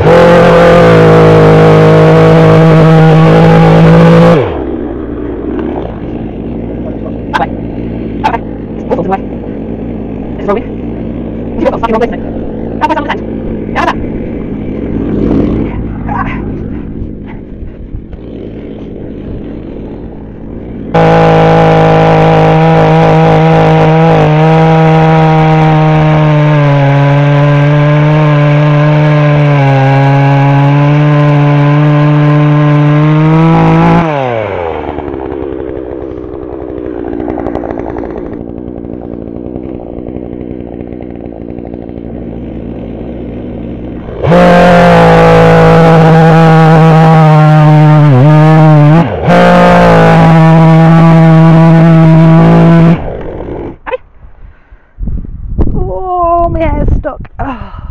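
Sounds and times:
chainsaw cutting branch: 0:00.0 - 0:54.1.

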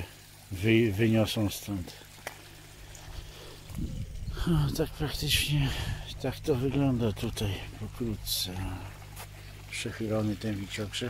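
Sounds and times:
faint water trickle: 0:00.0 - 0:11.0
low steady hum: 0:00.0 - 0:11.0
low rumble: 0:02.6 - 0:09.1.

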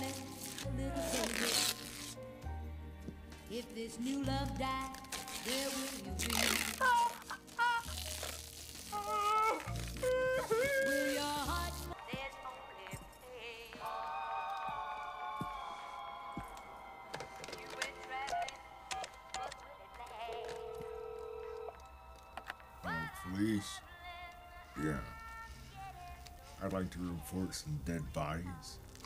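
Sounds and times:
tape peeling off a roll: 0:00.0 - 0:02.2, 0:03.6 - 0:12.3
song playing: 0:00.0 - 0:25.7
quiet film music: 0:00.0 - 0:29.0
telephone dial tone: 0:20.0 - 0:22.5.

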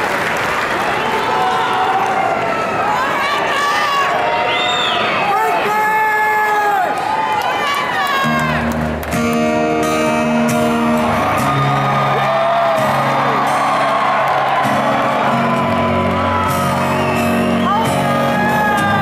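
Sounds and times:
audience whooping and shouting: 0:00.8 - 0:19.0
acoustic guitar chords: 0:08.2 - 0:19.0.

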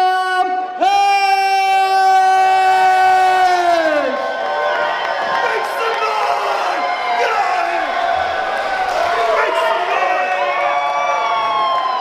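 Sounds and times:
crowd cheering: 0:01.2 - 0:12.0.

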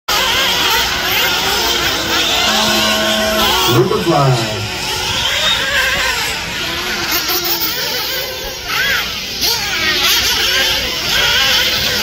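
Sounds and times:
rc car motors whining: 0:00.1 - 0:12.0.

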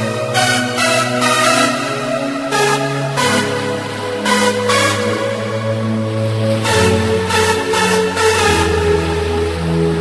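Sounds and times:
synthesizer chords: 0:00.0 - 0:10.0.

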